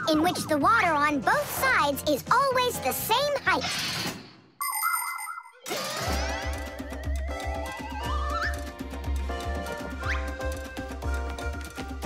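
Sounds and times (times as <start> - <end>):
background music: 0.0 - 3.8, 5.6 - 12.0.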